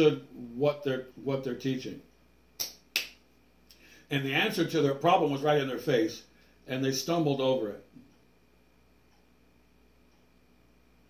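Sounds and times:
short sharp clicks: 0:02.6 - 0:03.2.

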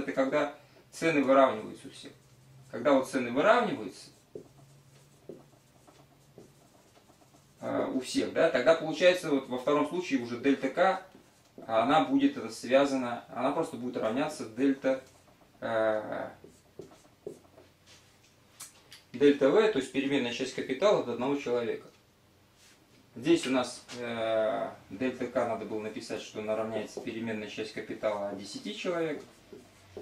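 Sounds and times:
marker writing on whiteboard: 0:01.1 - 0:12.1, 0:13.7 - 0:18.2, 0:25.1 - 0:30.0.

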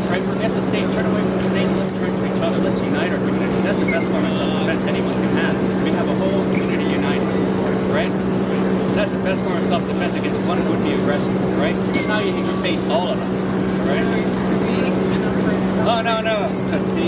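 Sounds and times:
indistinct talking voices: 0:00.0 - 0:17.0
low machine hum: 0:00.0 - 0:17.0.

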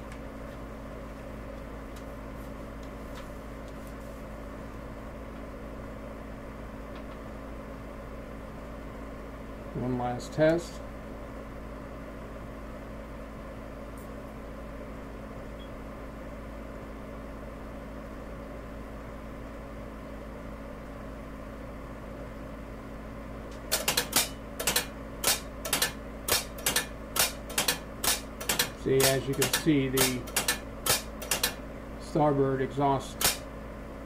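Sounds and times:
steady low hum: 0:00.0 - 0:34.0
valves clicking and clacking: 0:23.5 - 0:31.6.

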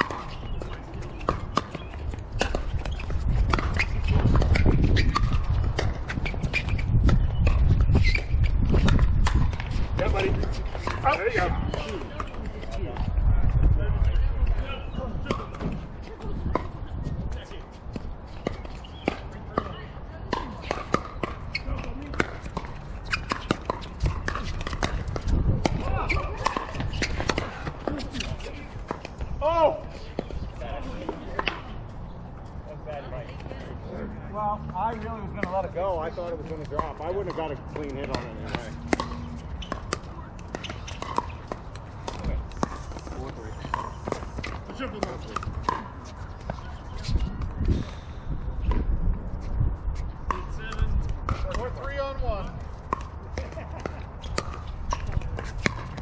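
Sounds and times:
faint voices: 0:00.0 - 0:02.3, 0:09.7 - 0:23.1, 0:23.8 - 0:48.9
wind rumble on microphone: 0:00.0 - 0:33.9, 0:42.0 - 0:56.0.

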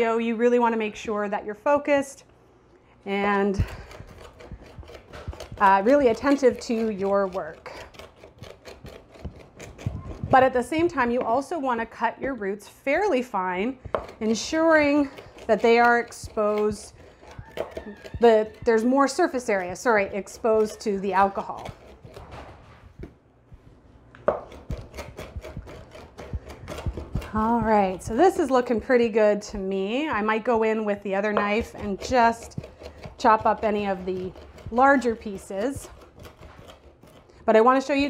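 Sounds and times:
knife chopping on cutting board: 0:03.6 - 0:11.4, 0:13.8 - 0:23.1, 0:24.2 - 0:28.8, 0:31.3 - 0:38.0.

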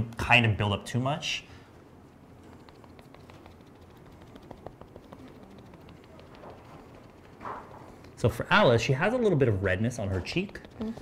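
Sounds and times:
puff dabbing on skin: 0:02.1 - 0:11.0.

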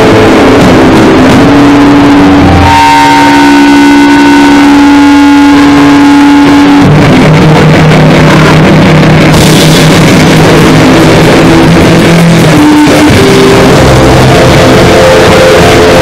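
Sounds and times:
feedback-like tone: 0:00.0 - 0:06.9, 0:09.4 - 0:16.0
distorted harsh noise: 0:00.0 - 0:16.0.

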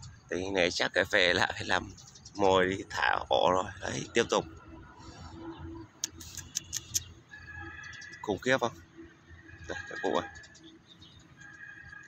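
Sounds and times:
sharp high ticks: 0:06.0 - 0:07.2.

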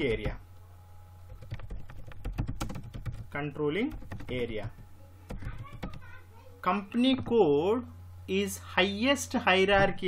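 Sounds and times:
low steady hum: 0:00.0 - 0:10.0
computer keyboard typing: 0:01.3 - 0:06.1.

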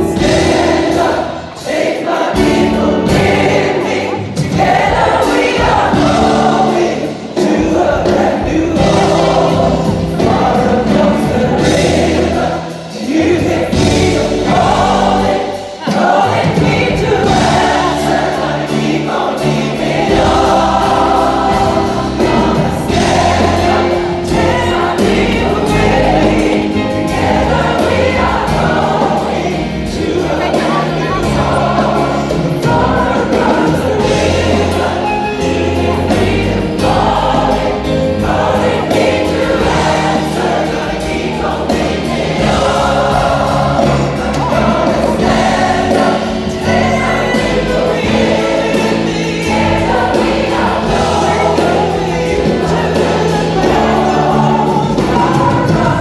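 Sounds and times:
band accompaniment: 0:00.0 - 0:56.0
gospel choir singing: 0:00.0 - 0:56.0.

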